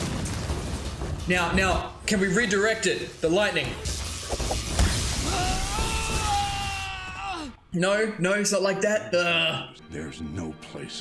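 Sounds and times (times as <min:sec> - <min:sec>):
knocks and thud: 0:00.0 - 0:02.2
electric shock crackling: 0:00.0 - 0:06.6
man screaming in pain: 0:05.2 - 0:07.6.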